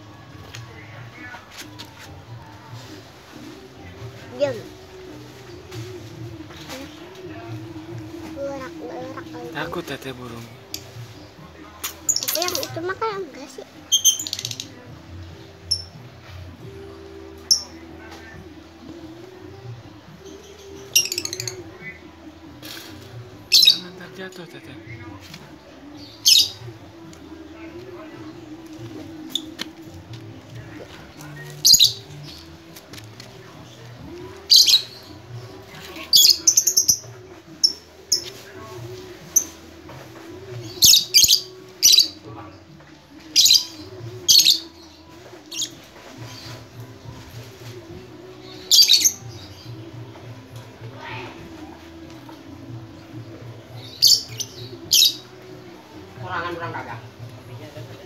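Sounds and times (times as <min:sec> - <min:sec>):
lovebirds shrill calls: 0:13.9 - 0:14.7, 0:20.3 - 0:21.9, 0:23.5 - 0:24.0, 0:26.0 - 0:26.7, 0:31.4 - 0:32.5, 0:34.4 - 0:35.2, 0:36.1 - 0:38.4, 0:40.6 - 0:42.2, 0:43.3 - 0:46.7, 0:48.4 - 0:49.8, 0:53.8 - 0:55.3.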